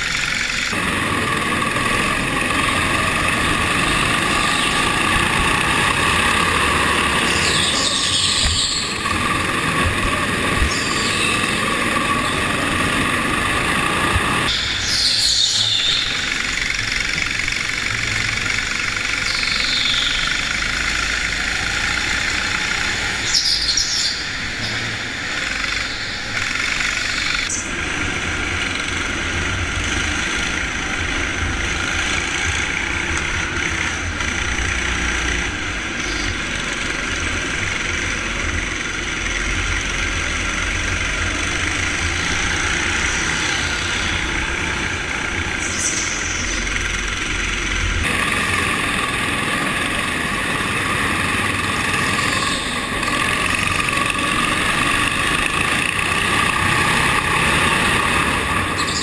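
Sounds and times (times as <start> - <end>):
high squeals: 0.0 - 17.0, 40.6 - 59.0
go-kart engine racing: 0.0 - 59.0.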